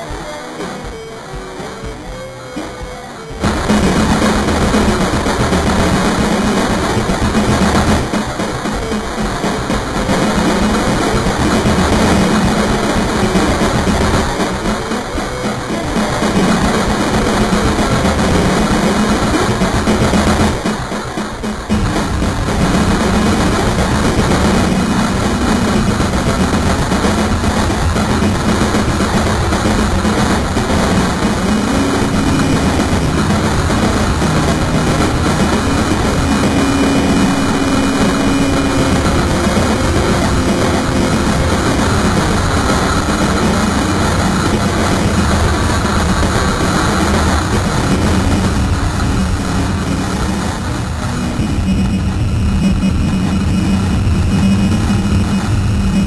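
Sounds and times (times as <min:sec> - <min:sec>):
low droning tones: 0:00.0 - 0:56.0
rumbling noise wall: 0:01.4 - 0:56.0.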